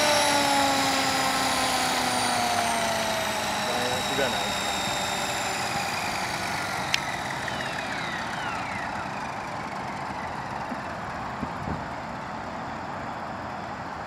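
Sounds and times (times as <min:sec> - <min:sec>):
rotor whoosh: 0:00.0 - 0:10.6
electric motor whine: 0:00.0 - 0:12.3.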